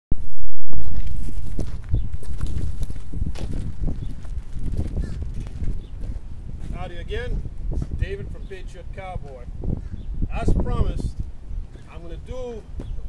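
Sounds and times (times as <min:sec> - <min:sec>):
wind rumbling on microphone: 0:00.1 - 0:13.0
light knocks and scuffs: 0:12.8 - 0:13.0.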